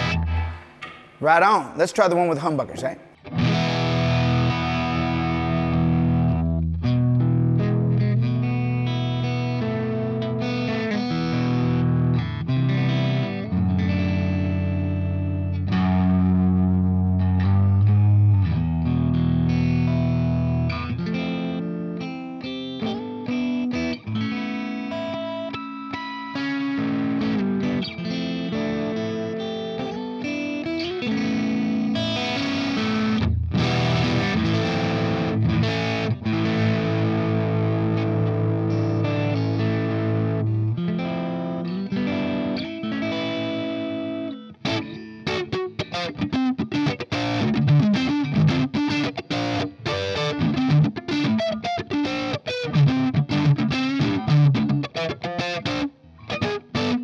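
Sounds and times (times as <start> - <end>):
electric guitar riffs and chords: 0.0 - 57.0.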